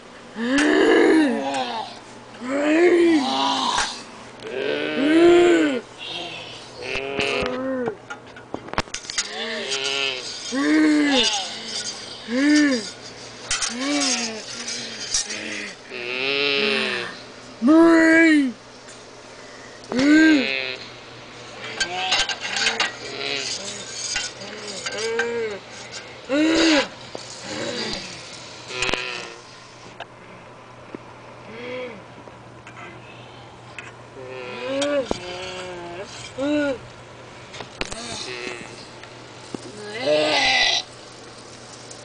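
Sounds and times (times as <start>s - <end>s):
person giving bleat-like cry: 0.4s - 8.0s, 15.6s - 17.2s, 28.7s - 29.4s, 34.2s - 36.8s, 39.7s - 40.9s
person making wordless cries: 0.4s - 8.0s, 9.3s - 11.6s, 19.9s - 20.8s, 34.2s - 36.8s, 39.7s - 40.8s
metal spatula scraping frying pan: 9.0s - 15.8s, 21.8s - 26.1s.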